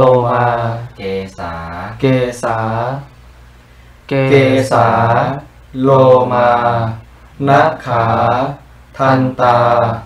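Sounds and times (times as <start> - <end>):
man chanting slowly: 0.0 - 3.1, 4.1 - 10.0.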